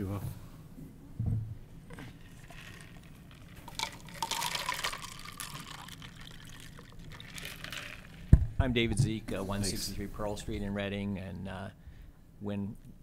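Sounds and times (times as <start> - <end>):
water pouring into a cup: 2.2 - 8.4.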